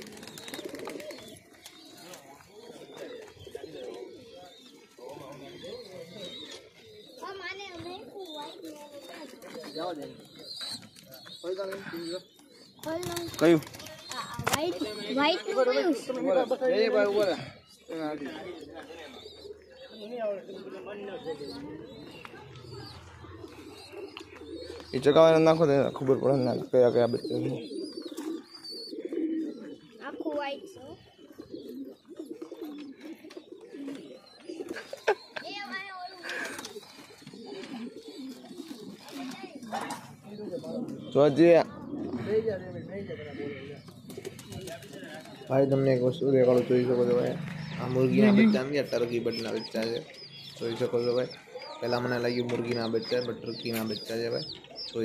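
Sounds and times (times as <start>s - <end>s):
pigeons cooing: 0.0s - 55.0s.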